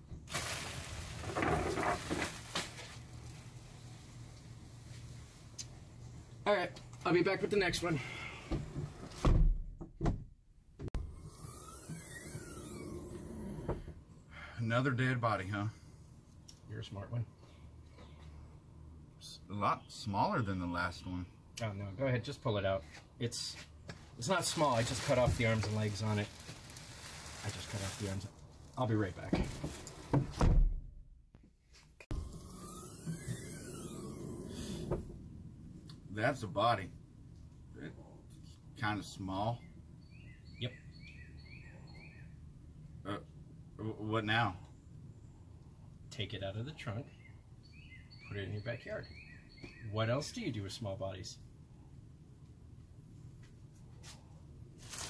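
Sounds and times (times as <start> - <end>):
vehicle hatch shutting: 32.1 - 35.2
rising and falling sweep tones: 32.1 - 35.3.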